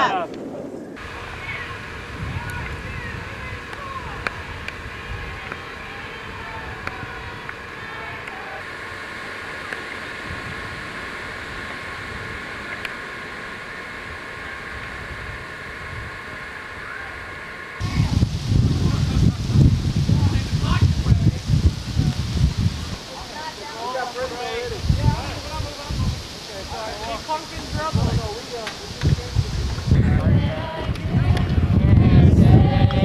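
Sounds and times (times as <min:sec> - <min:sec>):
faint distant voices: 0:00.0 - 0:10.7, 0:16.4 - 0:33.0
steady hiss: 0:00.0 - 0:33.0
wind on microphone: 0:00.0 - 0:33.0.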